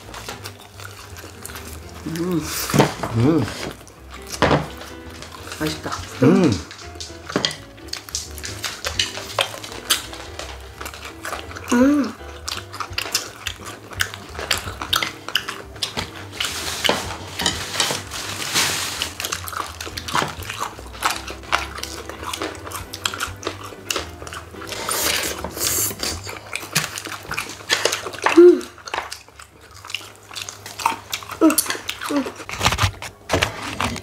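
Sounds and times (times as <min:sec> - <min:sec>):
crunching and chewing: 0:00.0 - 0:34.0
chopsticks clicking on plates: 0:02.7 - 0:18.0.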